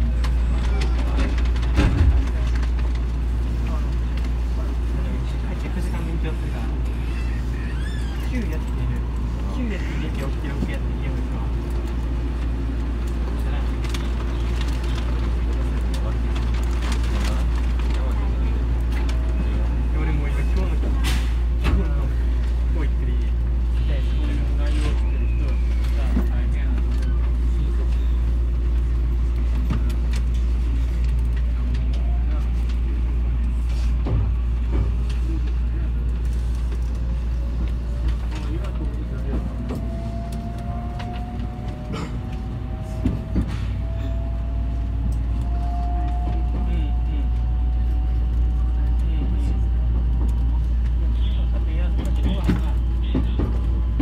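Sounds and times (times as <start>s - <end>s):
train low hum: 0.0s - 54.0s.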